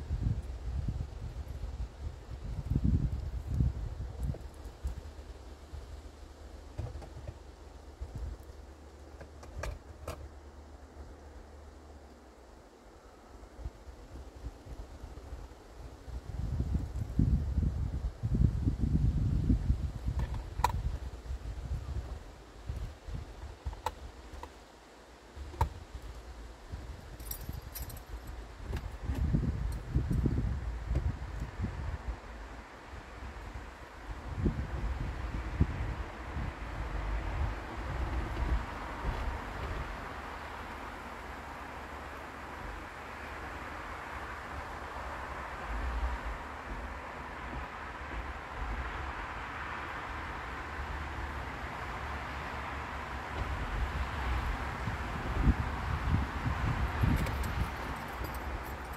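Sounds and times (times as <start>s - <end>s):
wind gusts buffeting microphone: 0.0s - 10.4s, 13.5s - 24.4s, 25.4s - 41.5s, 42.4s - 58.9s
small jingling ticks: 57.0s - 58.9s.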